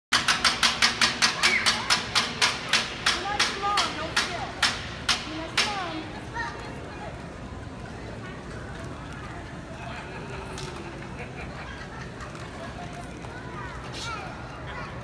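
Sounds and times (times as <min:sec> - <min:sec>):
drum-stick hits: 0:00.1 - 0:05.8.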